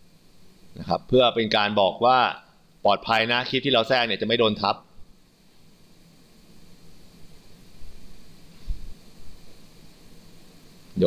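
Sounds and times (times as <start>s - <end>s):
microphone background hiss: 0.0s - 11.0s.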